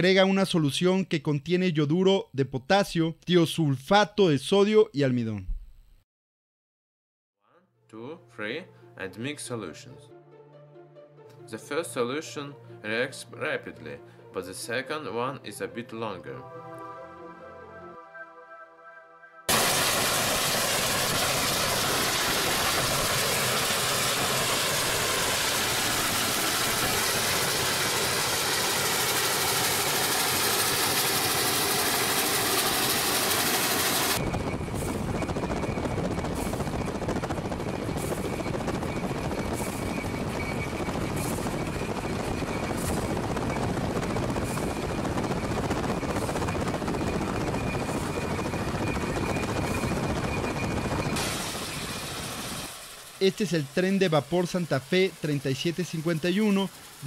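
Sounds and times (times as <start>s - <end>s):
road and wind noise: 34.2s - 52.8s.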